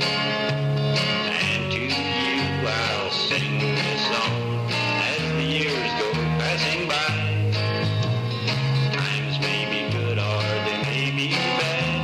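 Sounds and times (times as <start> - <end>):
acoustic guitar: 0.0 - 12.0
bass guitar: 0.0 - 12.0.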